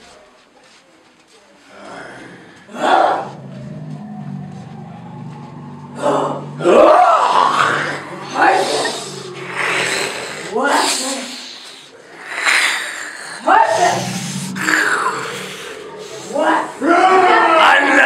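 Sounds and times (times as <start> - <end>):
people crying and wailing: 1.8 - 11.3, 11.9 - 18.0
low steady drone: 1.9 - 12.0, 13.4 - 18.0.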